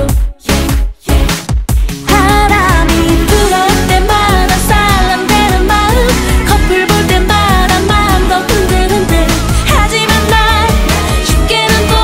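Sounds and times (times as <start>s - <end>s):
electronic pop music: 0.0s - 12.0s
person singing: 2.0s - 12.0s.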